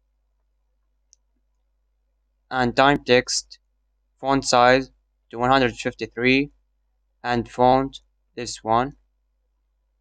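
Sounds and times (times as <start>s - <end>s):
faint mouse click: 1.1s - 1.7s.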